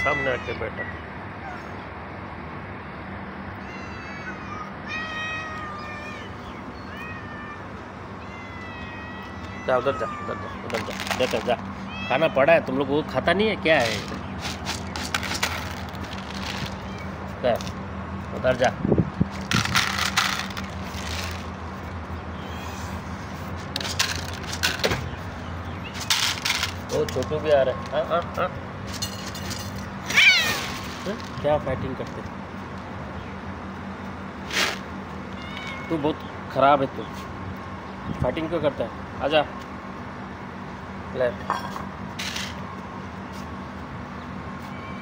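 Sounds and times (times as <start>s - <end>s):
cats meowing: 0.0s - 1.9s, 3.4s - 17.6s, 20.3s - 23.6s, 30.0s - 32.4s, 35.1s - 36.4s, 44.5s - 45.0s
low background hum: 0.0s - 45.0s
dry kibble rattling into plastic bowl: 10.7s - 11.5s, 13.8s - 16.8s, 19.4s - 21.5s.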